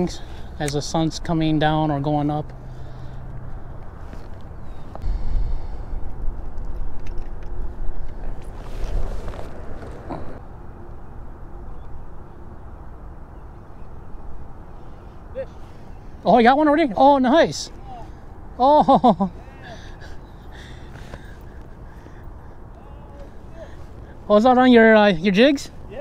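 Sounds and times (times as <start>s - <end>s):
wind buffeting microphone: 3.4s - 10.4s.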